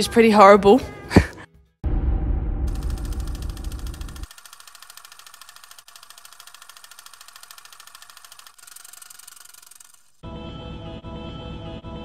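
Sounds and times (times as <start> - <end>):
loud deep rumble: 1.8 - 4.2
rapid mechanical clicking: 2.7 - 10.2.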